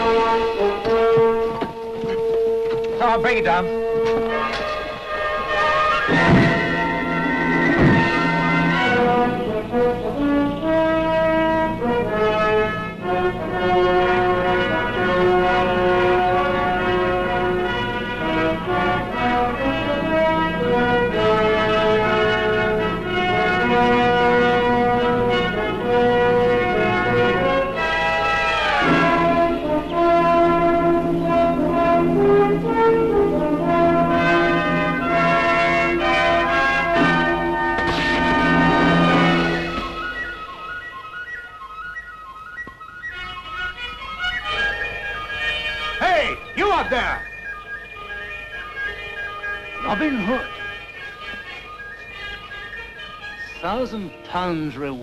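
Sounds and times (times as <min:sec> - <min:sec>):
orchestral music led by brass: 0:00.0 - 0:55.0.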